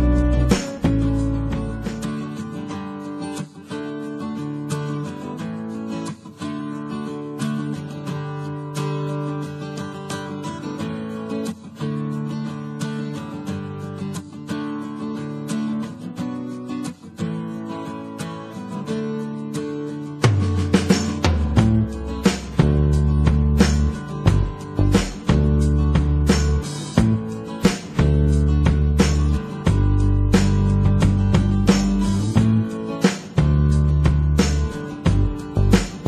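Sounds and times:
acoustic guitar chords: 0:00.0 - 0:36.0.

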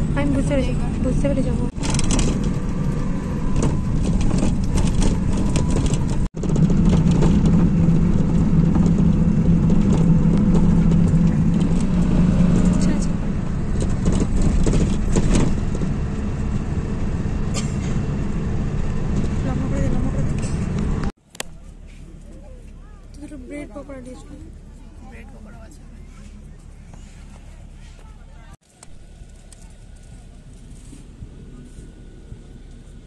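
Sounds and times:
bus engine and road noise: 0:00.0 - 0:33.0.

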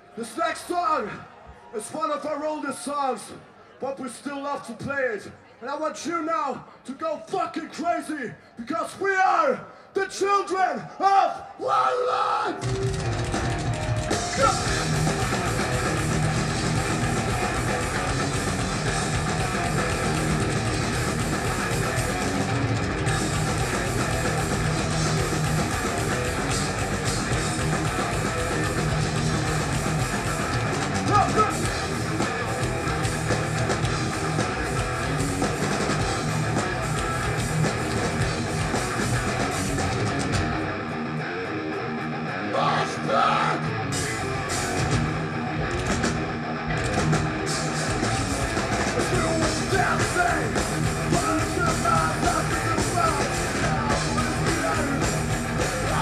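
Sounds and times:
drum kit: 0:12.6 - 0:40.6, 0:43.9 - 0:56.0
bass guitar: 0:12.6 - 0:56.0
distorted electric guitars: 0:12.6 - 0:56.0.

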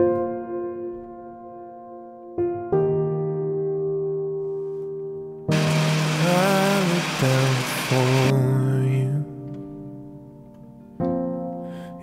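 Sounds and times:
soft background music: 0:00.0 - 0:12.0
blender running: 0:05.5 - 0:08.4.

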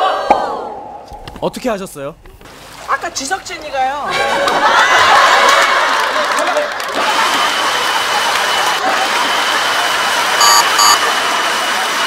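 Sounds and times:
water cannons blasting spray: 0:07.0 - 0:12.0
short electronic beeps: 0:10.4 - 0:11.0.

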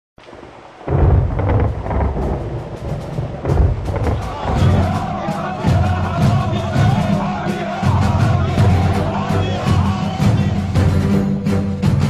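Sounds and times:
thunder crackles: 0:00.2 - 0:11.0
thunder rumbling: 0:00.2 - 0:11.1
faint hiss: 0:00.2 - 0:12.0.

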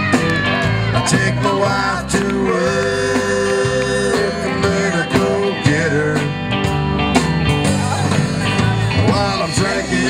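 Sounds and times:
country-rock band playing: 0:00.0 - 0:10.0
electric guitars with bent notes: 0:00.0 - 0:10.0.

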